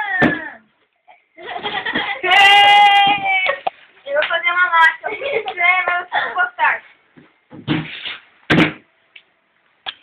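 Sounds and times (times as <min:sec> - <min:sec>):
young person speaking: 0:03.1 - 0:06.9.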